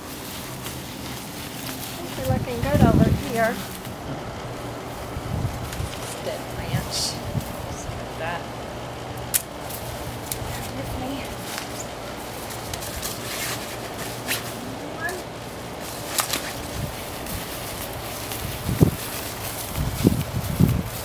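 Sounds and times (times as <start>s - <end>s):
footsteps on grass: 0.0s - 8.1s, 9.5s - 21.0s
low steady hum: 0.0s - 21.0s
dry twigs snapping: 0.2s - 2.4s, 9.2s - 14.4s, 15.8s - 21.0s.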